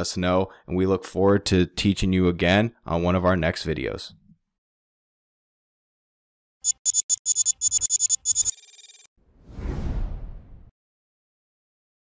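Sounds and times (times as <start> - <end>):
whoosh: 9.2 - 10.7.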